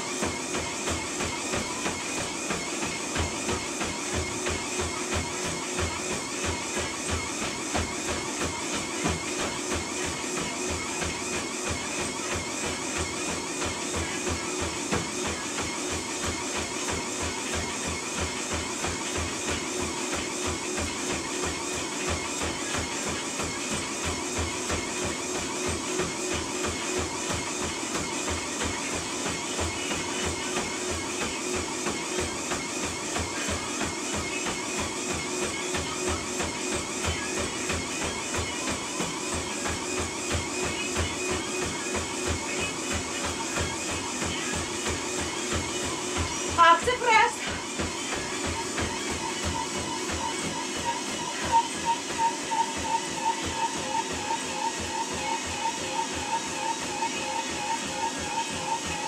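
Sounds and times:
footfalls on treadmill belt: 0.0s - 59.0s
treadmill running: 0.0s - 59.0s.

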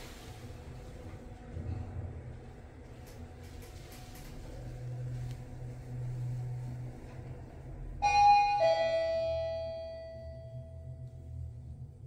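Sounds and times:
steady low hum: 0.0s - 12.0s
elevator two-note arrival chime: 8.0s - 11.0s.

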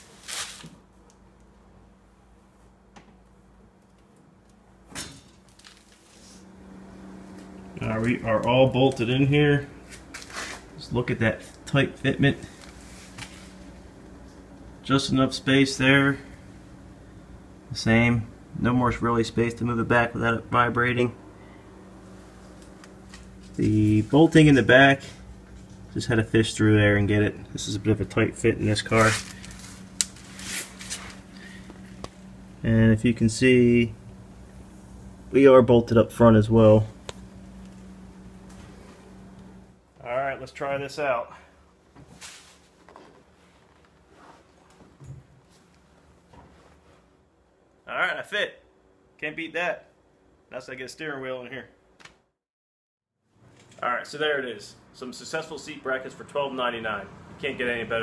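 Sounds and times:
faint steady hum: 0.0s - 52.0s.

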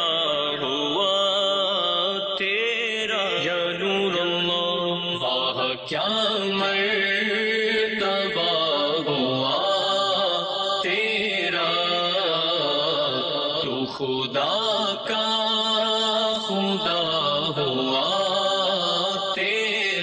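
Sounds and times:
man singing devotional song: 0.0s - 20.0s.

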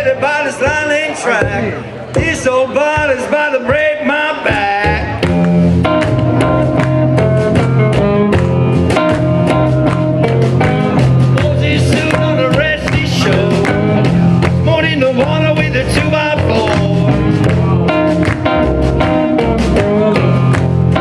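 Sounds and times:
drum kit steady beat: 0.0s - 21.0s
electric guitar: 4.4s - 21.0s
upright double bass: 4.4s - 21.0s.

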